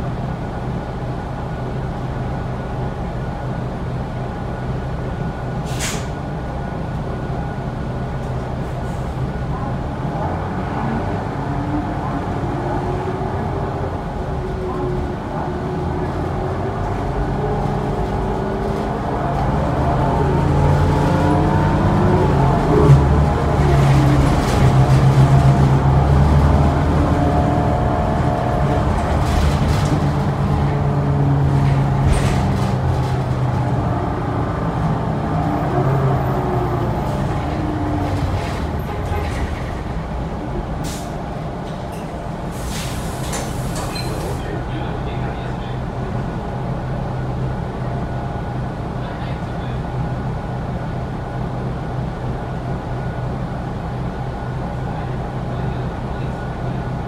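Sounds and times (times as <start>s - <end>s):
bus engine running: 0.0s - 57.0s.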